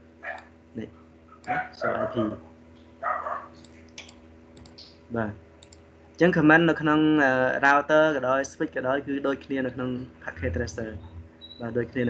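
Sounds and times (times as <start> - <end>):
computer mouse clicks: 3.6 - 5.0, 5.6 - 5.8.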